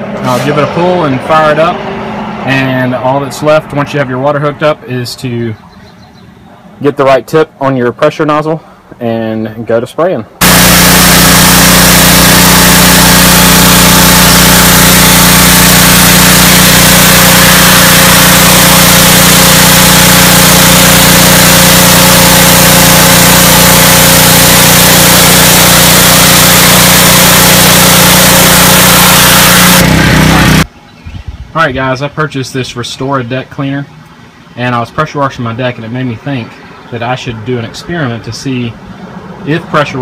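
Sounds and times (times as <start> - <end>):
nozzle spraying water on wood: 10.4 - 29.8
pressure washer engine running: 10.4 - 30.7.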